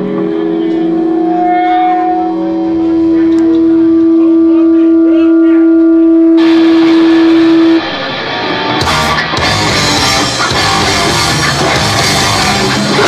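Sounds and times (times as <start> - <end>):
cymbals: 0.0 - 5.6
guitar amp feedback tone: 0.0 - 13.0.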